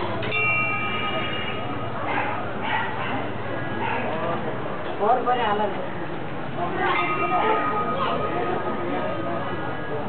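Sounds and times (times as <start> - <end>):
street noise: 0.0 - 10.0
ringing bell tone: 0.3 - 2.0, 6.9 - 9.0
dog barking: 2.1 - 4.2.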